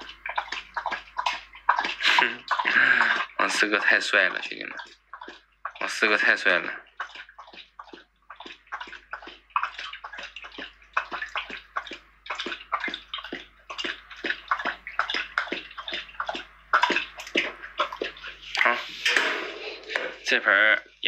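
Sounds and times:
dog lapping from metal bowl: 0:00.0 - 0:21.0.

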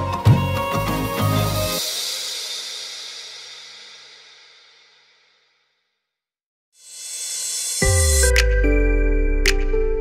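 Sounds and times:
background music: 0:00.0 - 0:02.3, 0:07.8 - 0:10.0
cymbal crash: 0:01.8 - 0:05.6, 0:06.8 - 0:08.9.

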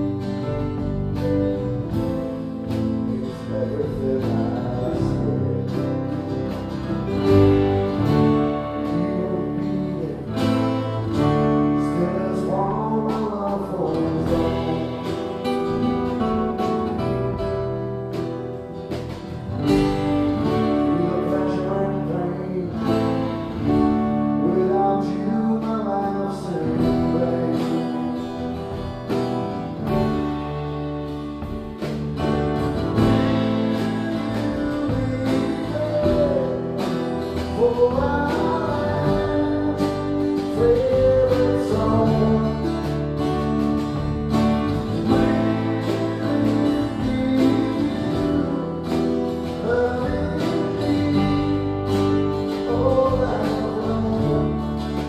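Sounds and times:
acoustic guitars: 0:00.0 - 0:55.0
keyboard: 0:00.0 - 0:55.0
person singing: 0:01.2 - 0:16.8, 0:19.7 - 0:29.2, 0:33.0 - 0:43.8, 0:44.7 - 0:55.0.

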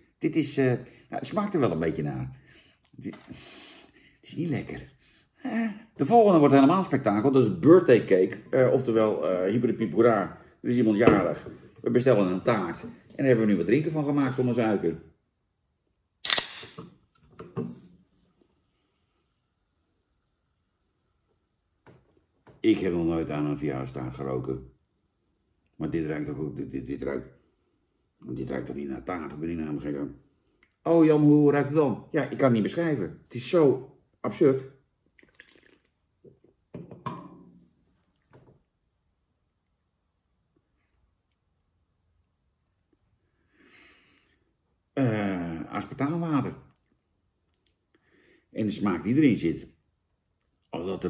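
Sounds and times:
can tab snapping open: 0:16.2 - 0:16.8
can handling noise: 0:16.2 - 0:17.8
man slurping fizzy drink: 0:35.2 - 0:36.0
can set down on wooden table: 0:36.7 - 0:37.6.

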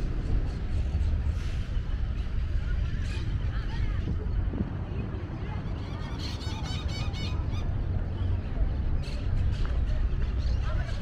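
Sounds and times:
wind on microphone: 0:00.0 - 0:10.1
distant traffic: 0:00.0 - 0:11.0.

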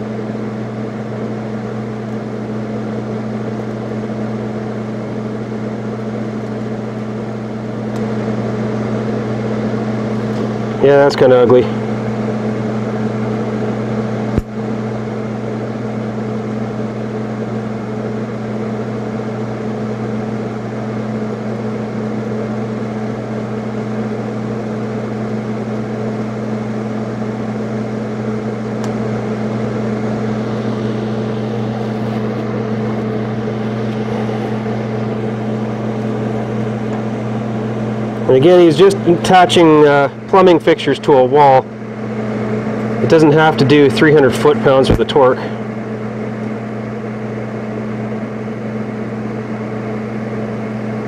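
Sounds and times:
welder humming and hissing: 0:00.0 - 0:51.0.

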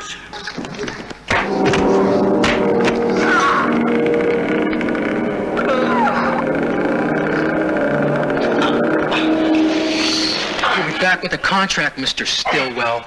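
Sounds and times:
droning film score chords: 0:01.3 - 0:12.6.

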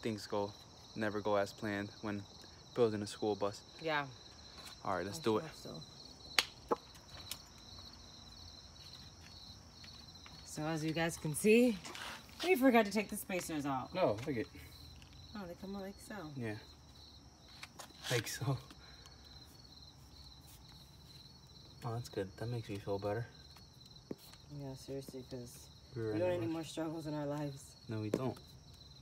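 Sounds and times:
insects chirping: 0:00.0 - 0:29.0.

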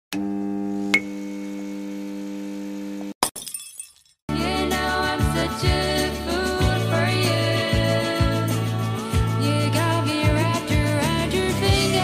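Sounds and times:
neon sign electric buzz: 0:00.2 - 0:03.2
glass shattering: 0:03.2 - 0:04.2.

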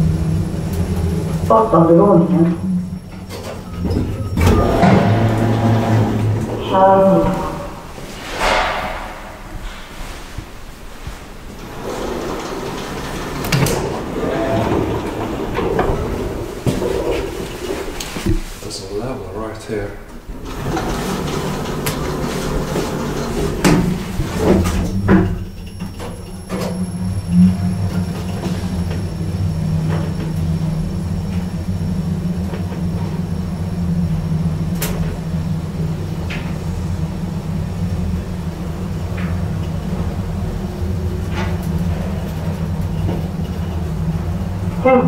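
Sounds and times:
elevator doors sliding shut: 0:00.0 - 0:18.6, 0:20.1 - 0:45.0
elevator travelling hum: 0:00.0 - 0:45.0.

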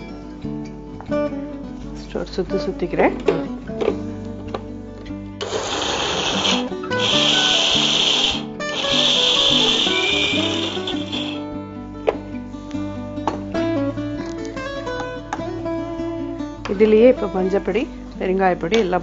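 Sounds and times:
electric mixer grinder grinding: 0:05.4 - 0:11.5.

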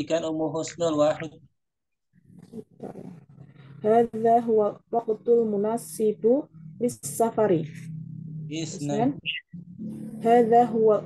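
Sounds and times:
muffled voice over video call: 0:00.0 - 0:01.5, 0:08.5 - 0:10.6.

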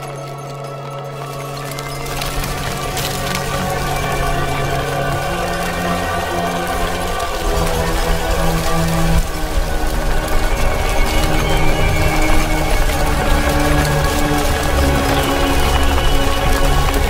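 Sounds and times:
dark film score held notes: 0:00.0 - 0:17.0
fine crackling: 0:00.0 - 0:17.0.

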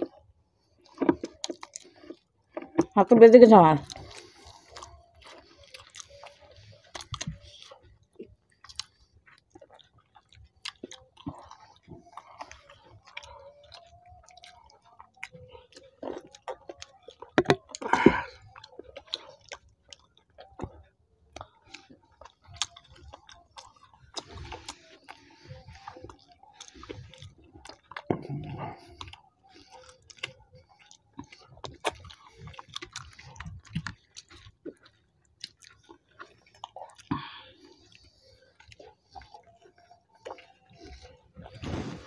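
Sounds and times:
close-miked chewing: 0:00.0 - 0:42.0
mouth smacks and clicks: 0:03.8 - 0:42.0.

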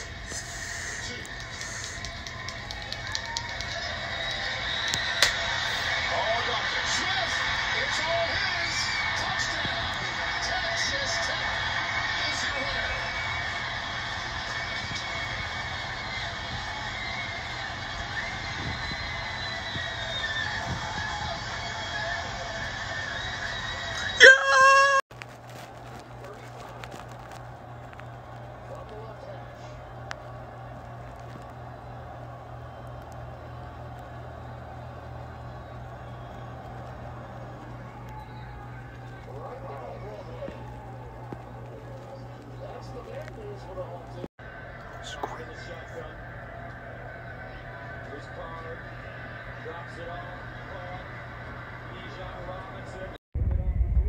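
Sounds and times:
stadium crowd noise: 0:00.0 - 0:54.0.

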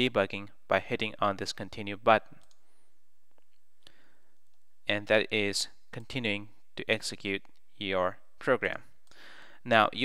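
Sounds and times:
person speaking: 0:00.0 - 0:02.6, 0:04.5 - 0:09.0, 0:09.6 - 0:10.0
faint clicks: 0:02.4 - 0:02.7.

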